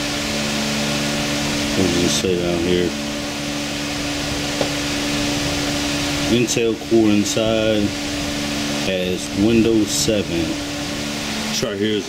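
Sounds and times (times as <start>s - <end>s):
machine hiss and hum: 0.0s - 12.0s.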